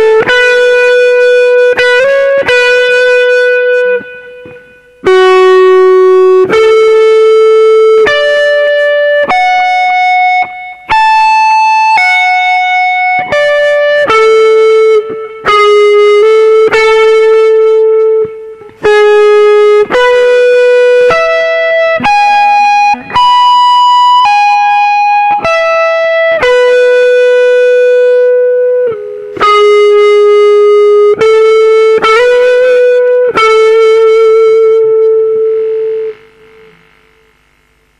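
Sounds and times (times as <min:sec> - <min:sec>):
electric guitar slow lead melody: 0:00.0 - 0:37.9.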